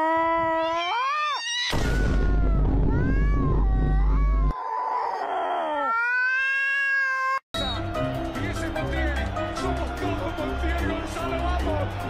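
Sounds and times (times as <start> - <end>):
cat yowling: 0.0 - 7.5
low background music: 7.6 - 12.0.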